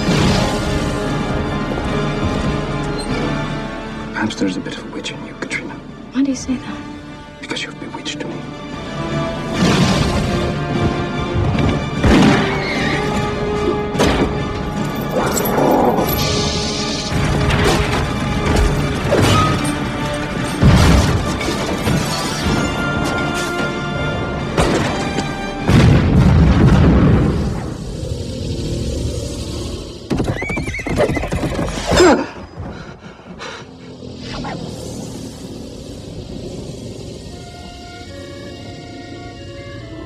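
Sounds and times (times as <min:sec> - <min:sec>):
dramatic orchestral music: 0:00.0 - 0:29.5, 0:37.0 - 0:40.0
clatter of hooves: 0:30.1 - 0:32.0
horse neighing: 0:30.1 - 0:32.2.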